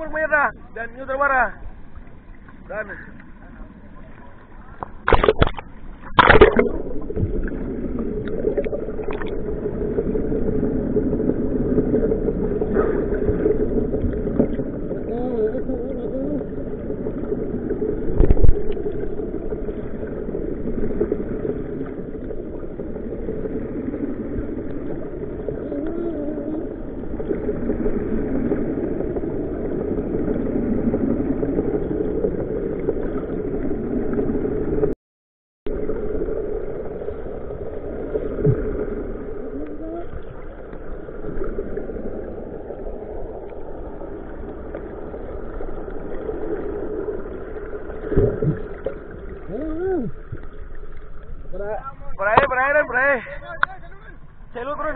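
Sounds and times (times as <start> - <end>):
muffled underwater rumble: 0.0 - 35.0, 35.7 - 54.9.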